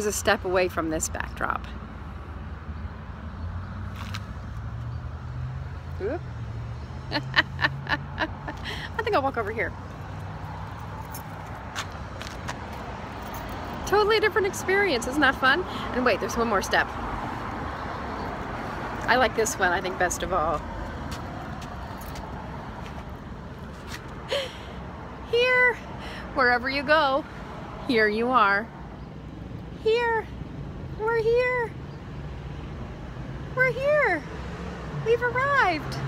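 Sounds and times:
road traffic rumble: 0.0 - 36.0
vehicle engine humming: 0.0 - 36.0.

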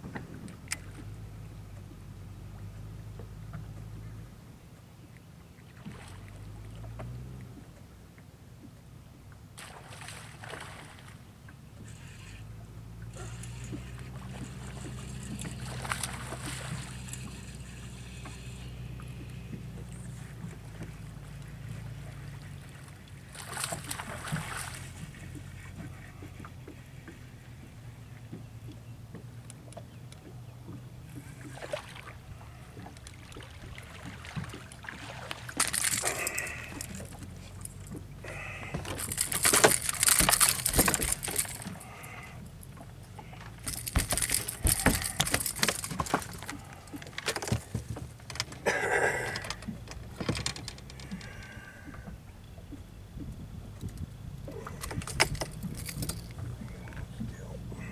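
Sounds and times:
boat motor humming: 0.0 - 57.9
fish splashing: 13.2 - 19.6, 31.4 - 49.8.

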